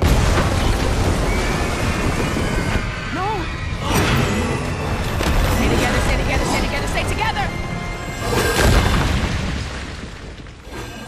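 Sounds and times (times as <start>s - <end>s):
loud explosion blast: 0.0s - 6.1s, 8.6s - 10.6s
rumbling debris noise: 0.0s - 11.0s
music: 0.5s - 9.0s.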